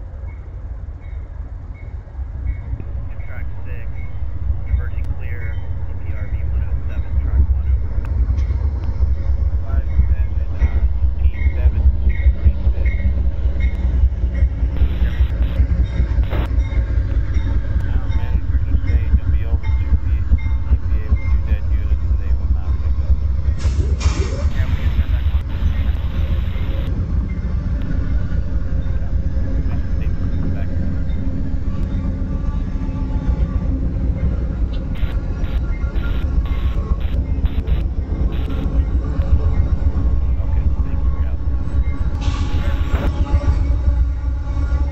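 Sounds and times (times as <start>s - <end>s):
diesel locomotive rumble: 0.0s - 44.9s
train cars rolling on rails: 0.0s - 44.9s
sudden loud burst of noise: 23.6s - 26.9s, 42.1s - 43.4s.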